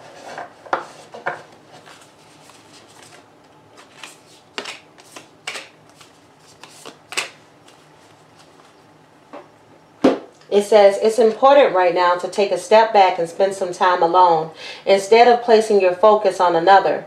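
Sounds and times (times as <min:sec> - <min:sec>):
cards being shuffled: 0:03.8 - 0:08.8.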